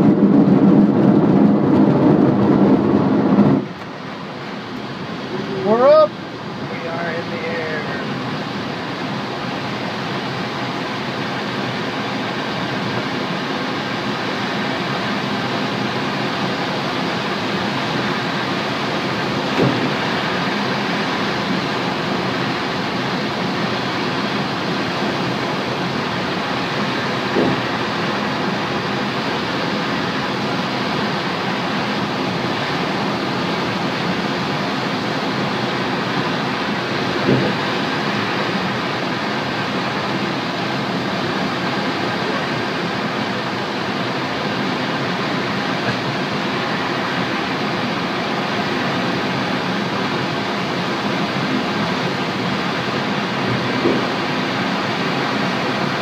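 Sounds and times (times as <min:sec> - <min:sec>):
rushing airflow in cockpit: 0:00.0 - 0:56.0.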